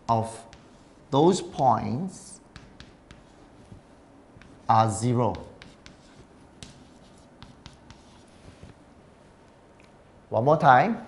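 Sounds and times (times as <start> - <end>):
chalk scratching on chalkboard: 0.3 - 1.0, 2.5 - 8.8
chalk tapping on chalkboard: 0.4 - 0.9, 2.5 - 8.8.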